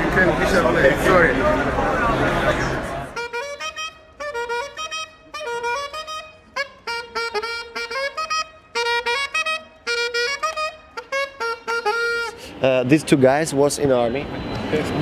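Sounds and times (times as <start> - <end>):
saxophone staccato riff: 3.2 - 12.6.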